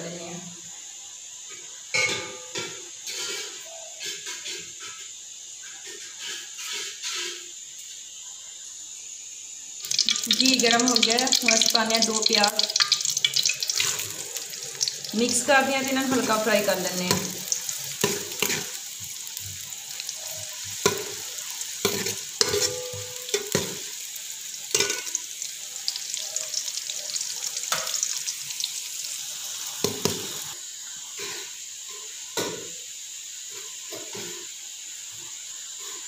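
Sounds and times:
onions sizzling in oil: 0:00.0 - 0:36.0
ladle scraping metal pot: 0:21.9 - 0:23.4.

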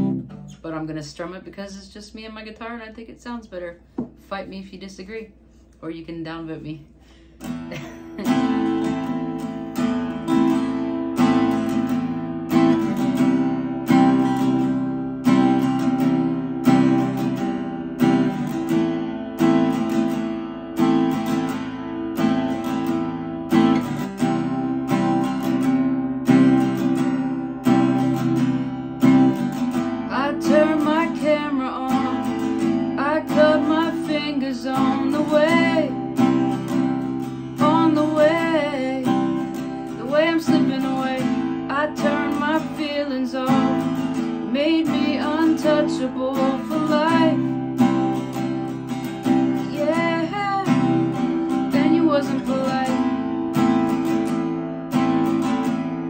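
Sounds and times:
acoustic guitar strumming: 0:00.0 - 0:01.8, 0:07.0 - 0:56.0
woman singing: 0:29.9 - 0:48.5, 0:49.2 - 0:54.0.

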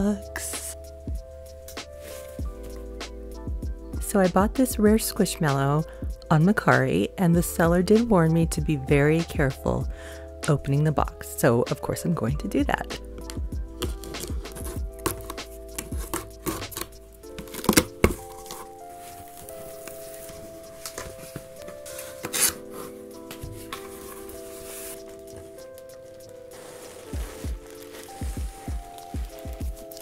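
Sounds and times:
background music with held chords: 0:00.0 - 0:30.0
cardboard box being cut open: 0:13.9 - 0:18.6.

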